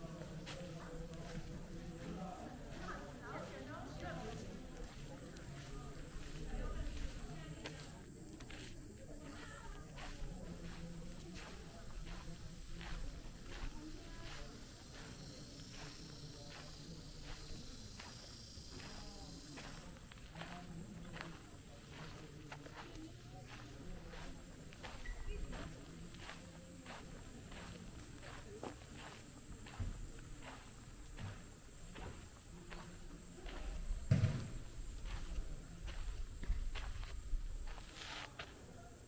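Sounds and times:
footsteps on packed earth: 0.0s - 38.7s.

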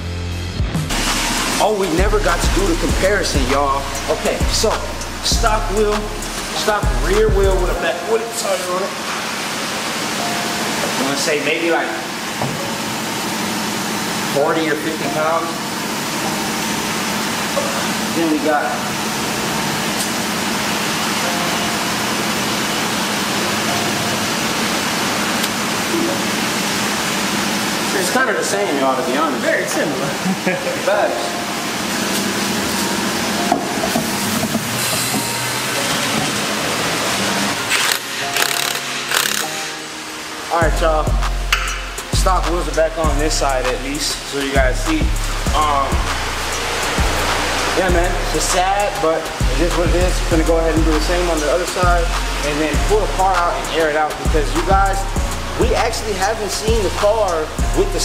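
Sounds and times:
background music: 0.0s - 9.2s, 10.0s - 13.5s, 14.3s - 26.6s, 27.9s - 58.0s
steady hiss: 36.5s - 57.7s
impact wrench bursts: 37.6s - 39.8s.

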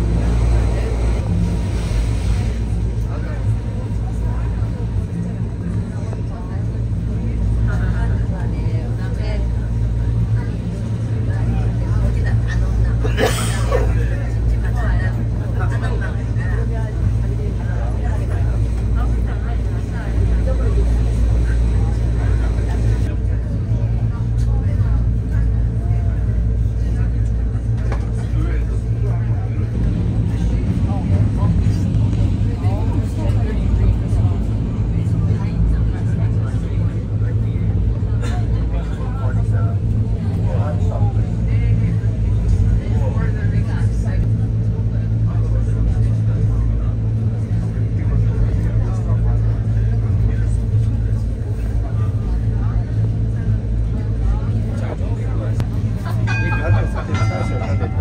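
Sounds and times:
passengers talking: 0.0s - 58.0s
train rumble and hum: 0.0s - 58.0s.

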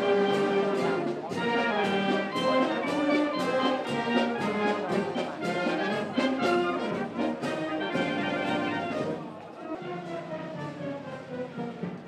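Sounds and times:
brass band playing: 0.0s - 12.0s.

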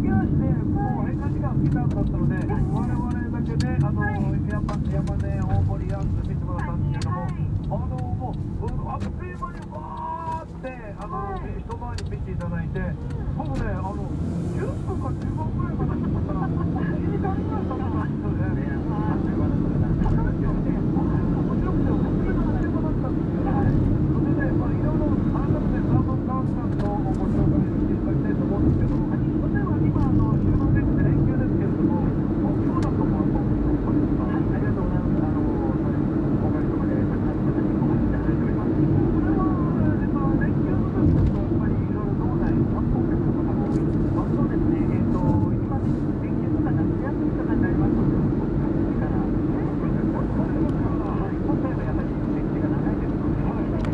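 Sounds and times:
car road and engine noise: 0.0s - 53.9s
faint car radio: 0.0s - 53.9s.

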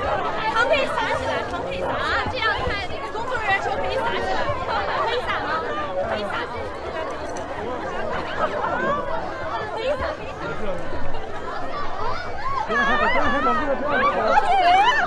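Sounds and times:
crowd chattering and calling out: 0.0s - 15.0s.

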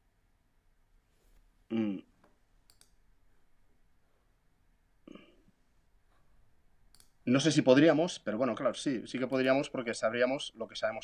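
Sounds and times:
faint quick clicks: 2.6s - 3.0s, 6.9s - 7.2s.

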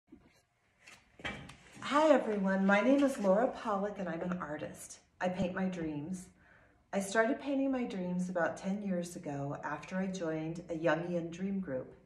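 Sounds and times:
woman speaking: 1.8s - 6.3s, 7.0s - 12.0s.

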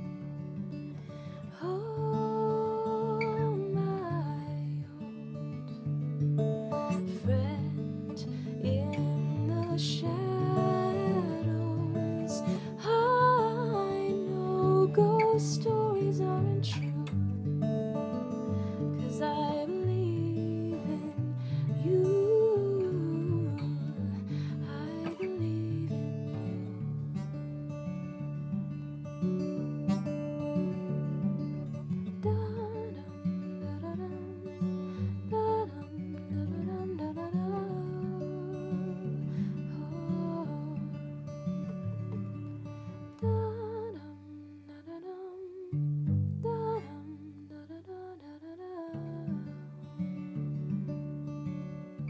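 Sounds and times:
acoustic guitar chords: 0.0s - 52.0s
woman singing softly: 1.2s - 5.7s, 6.8s - 26.9s, 32.0s - 41.5s, 42.2s - 50.0s.

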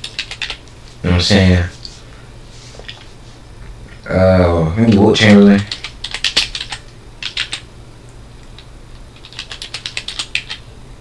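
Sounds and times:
keyboard typing: 0.0s - 0.7s, 4.9s - 7.7s, 8.5s - 10.7s.

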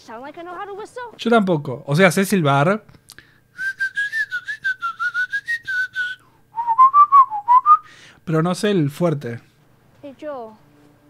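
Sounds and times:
man whistling a tune: 3.6s - 7.9s.

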